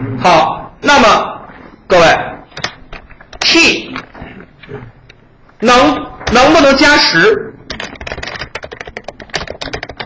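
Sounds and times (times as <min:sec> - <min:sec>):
fast typing on keyboard: 0:07.7 - 0:10.0.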